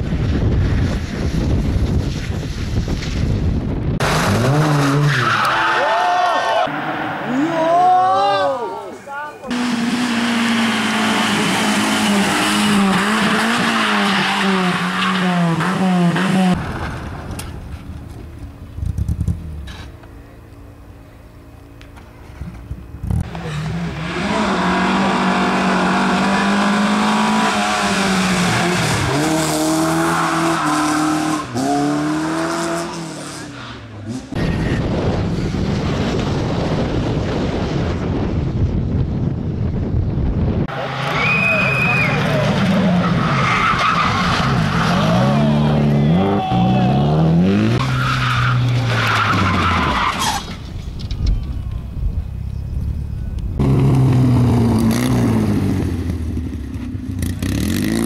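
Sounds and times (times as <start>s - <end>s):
wind rumbling on microphone: 0.0s - 4.4s, 34.3s - 40.7s
rally car engine revving: 3.9s - 5.8s, 9.5s - 17.5s, 22.2s - 38.4s, 40.7s - 50.6s, 53.5s - 58.0s
voices: 5.4s - 9.6s, 44.8s - 47.4s.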